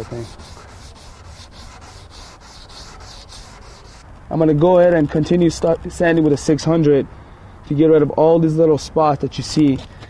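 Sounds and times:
wet sandpaper rubbing: 0.0s - 4.1s.

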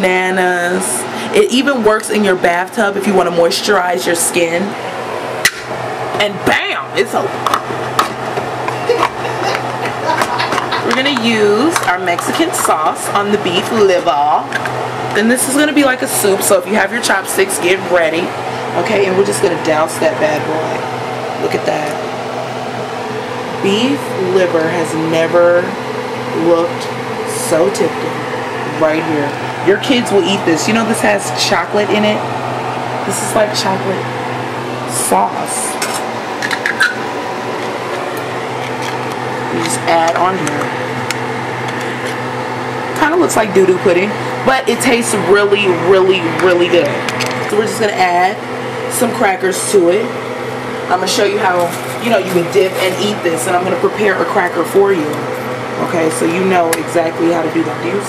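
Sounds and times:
low steady hum: 0.0s - 58.0s.

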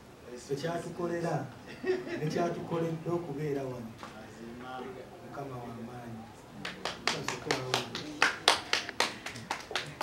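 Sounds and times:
hands clapping in rhythm: 6.6s - 10.0s.

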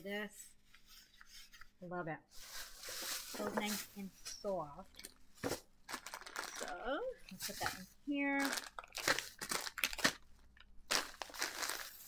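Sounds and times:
plastic bag crinkling: 2.4s - 12.0s.

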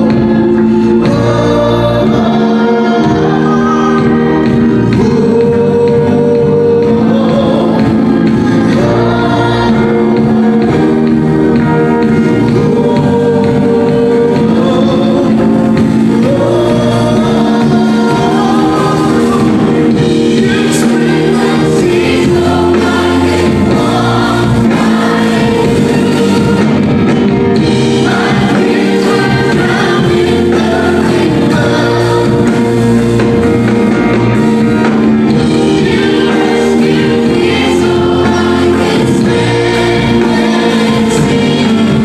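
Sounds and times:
bass guitar: 0.0s - 42.0s
electric guitar: 0.0s - 42.0s
keyboard: 0.0s - 42.0s
women singing together: 0.0s - 42.0s.

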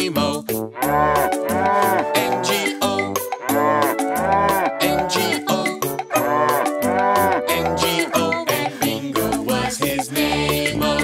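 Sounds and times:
bouncy children's music: 0.0s - 11.0s
cartoon cow mooing: 0.8s - 8.4s.

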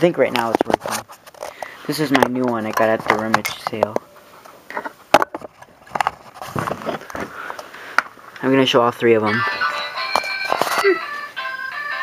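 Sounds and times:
handling noise rustling: 0.2s - 7.6s.

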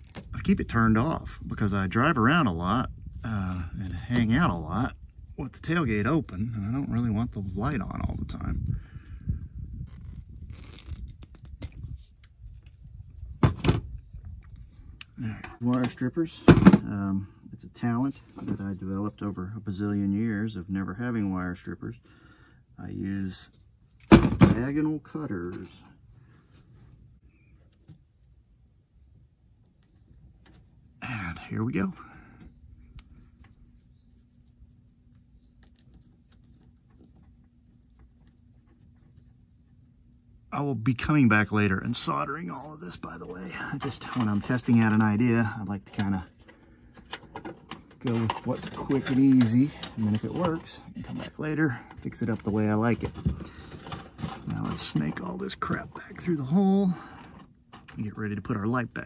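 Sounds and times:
steady low hum: 0.0s - 59.0s
wires clicking and rustling: 32.9s - 39.8s.

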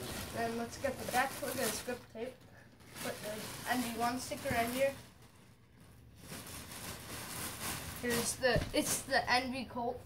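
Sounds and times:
plastic bag rustling: 0.0s - 9.4s.

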